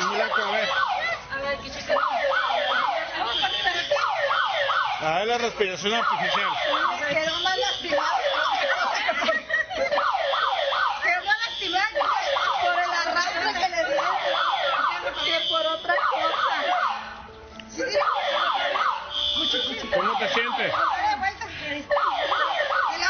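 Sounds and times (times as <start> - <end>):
electronic siren yelping: 0.0 - 1.2, 1.9 - 9.0, 9.8 - 17.2, 17.9 - 21.2, 21.9 - 23.0.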